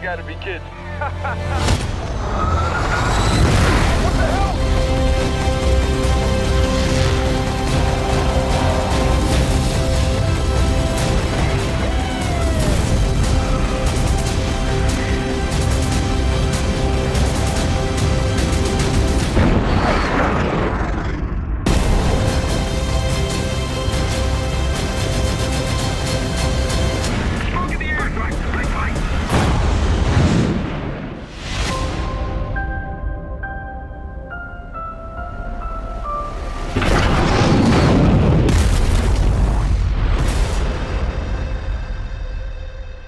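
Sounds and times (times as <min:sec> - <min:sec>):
dramatic music: 0:00.0 - 0:43.0.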